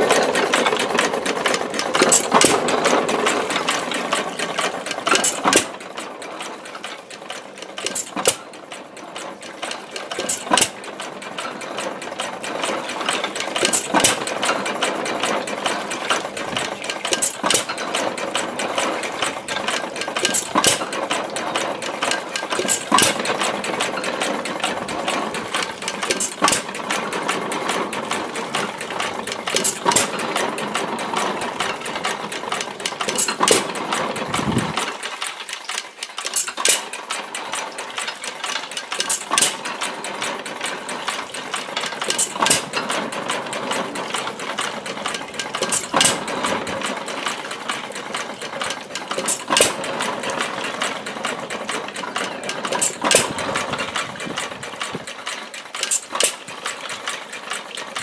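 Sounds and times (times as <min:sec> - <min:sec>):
water pump clattering: 0:00.0 - 0:58.0
water pouring into metal pail: 0:09.2 - 0:58.0
single-cylinder engine firing: 0:32.0 - 0:34.9, 0:48.6 - 0:55.0.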